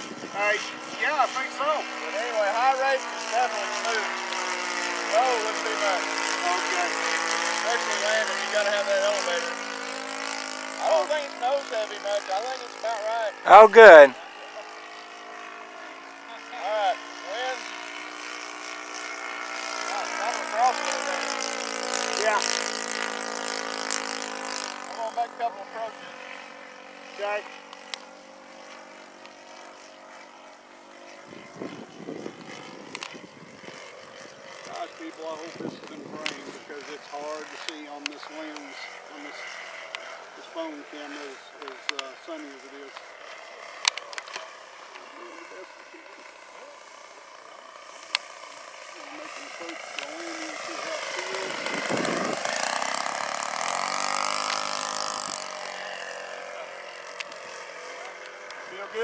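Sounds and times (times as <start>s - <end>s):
distant model plane engine drone: 0.0s - 59.0s.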